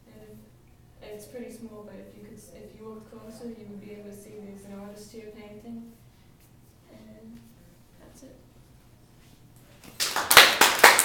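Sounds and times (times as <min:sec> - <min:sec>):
audience applause: 0:09.9 - 0:11.0.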